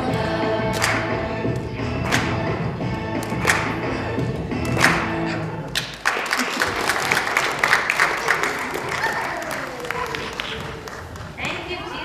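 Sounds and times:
congregation clapping: 0:00.6 - 0:01.2, 0:02.0 - 0:02.4, 0:03.2 - 0:03.9, 0:04.6 - 0:11.5.

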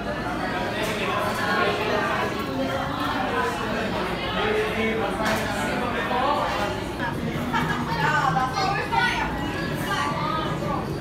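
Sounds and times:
chatter of many people: 0:00.0 - 0:11.0.

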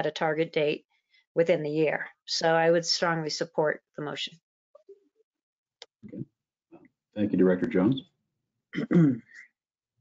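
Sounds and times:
person clearing throat: 0:08.8 - 0:09.4.

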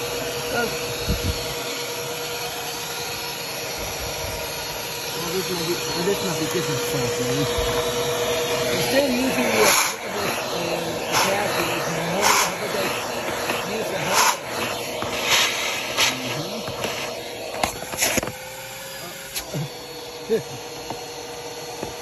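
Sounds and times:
vacuum cleaner running: 0:00.0 - 0:22.0.

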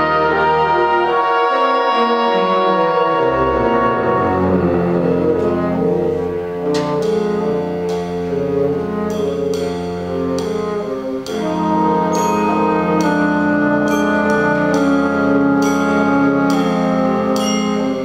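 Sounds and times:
big band brass chords: 0:00.0 - 0:18.0
sharp percussion strikes: 0:06.6 - 0:18.0.

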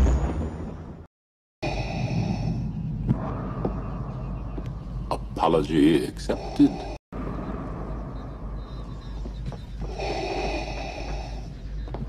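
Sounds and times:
low background drone: 0:01.6 - 0:12.0.

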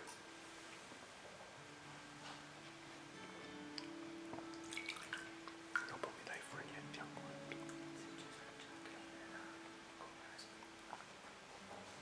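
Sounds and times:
soft sustained music: 0:00.0 - 0:12.0
water pouring into metal chalice: 0:04.6 - 0:06.0.

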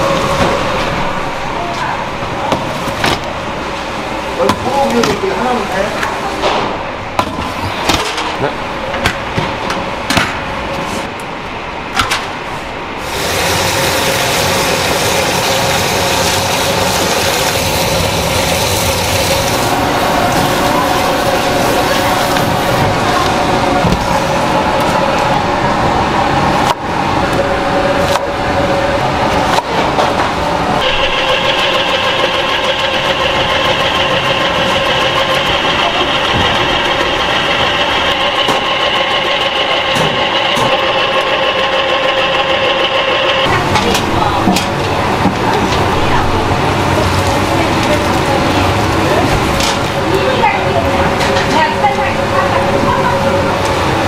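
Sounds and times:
steady mechanical hum: 0:00.0 - 0:54.0
electric vegetable slicer whining: 0:30.8 - 0:43.5.

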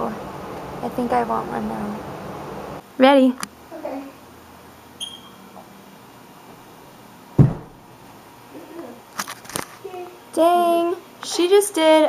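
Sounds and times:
person landing on carpeted floor: 0:07.4 - 0:07.8.

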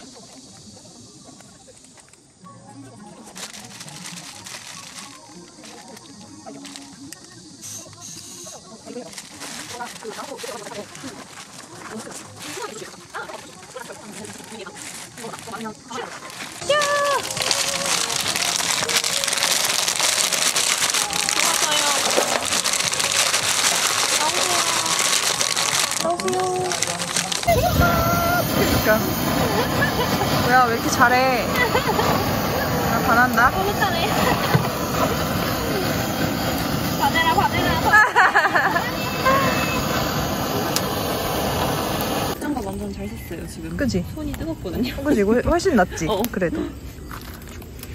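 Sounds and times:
torch flame jet hissing: 0:03.4 - 0:42.6
charcoal poured into metal box: 0:13.3 - 0:34.7.

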